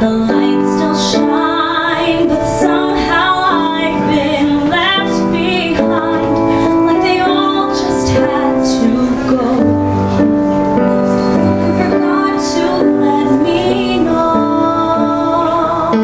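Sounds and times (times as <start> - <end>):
woman singing with vibrato: 0.0 - 10.2, 11.3 - 16.0
piano accompaniment: 0.0 - 16.0.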